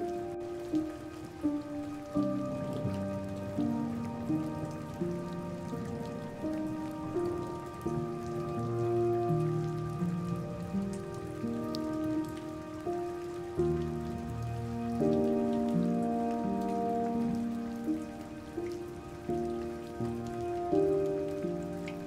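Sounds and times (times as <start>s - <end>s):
rain patter: 0.0s - 22.0s
slow relaxation music: 0.0s - 22.0s.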